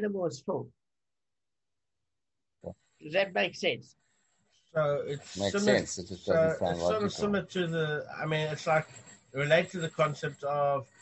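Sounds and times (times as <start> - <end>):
brief voice sound: 4.8 - 8.8.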